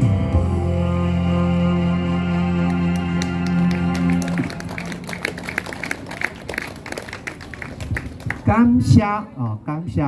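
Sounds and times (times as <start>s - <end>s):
live band held chord: 0.0s - 6.0s
audience applause: 2.7s - 8.5s.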